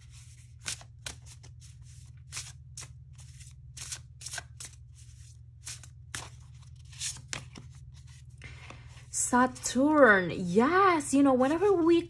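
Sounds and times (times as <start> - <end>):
cards being shuffled: 0.0 - 9.1
steady low hum: 0.0 - 12.0.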